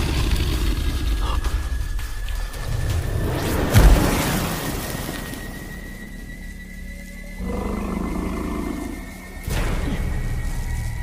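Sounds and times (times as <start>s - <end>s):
growling beast roar: 0.0s - 1.4s, 7.4s - 9.1s
dark fantasy film score: 0.0s - 11.0s.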